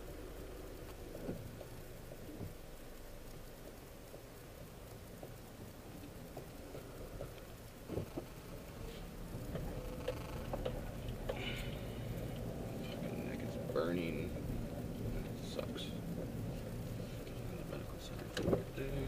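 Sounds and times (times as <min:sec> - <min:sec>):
car engine rumble: 0:00.0 - 0:19.0
light clicks and ticks: 0:00.1 - 0:19.0.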